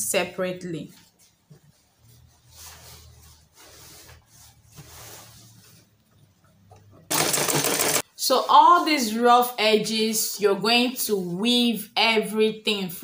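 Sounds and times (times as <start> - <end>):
sewing machine stitching: 7.1 - 8.0.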